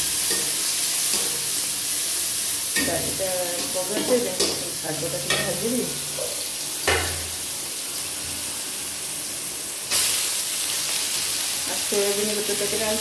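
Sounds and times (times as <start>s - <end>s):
food sizzling in a pan: 0.0s - 13.0s.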